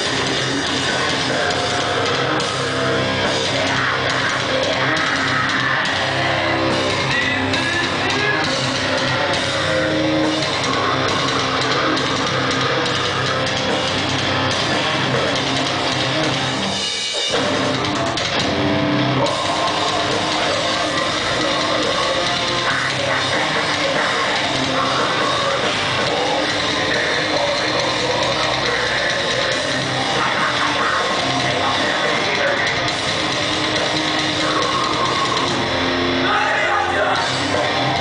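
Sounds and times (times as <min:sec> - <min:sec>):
distorted electric guitars: 0:00.0 - 0:38.0
drum kit: 0:00.0 - 0:38.0
metalcore band playing: 0:00.0 - 0:38.0.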